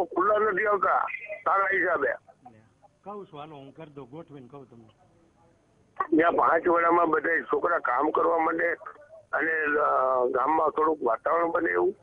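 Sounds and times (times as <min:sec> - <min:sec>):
man talking over telephone: 0:00.0 - 0:02.3, 0:06.0 - 0:12.0.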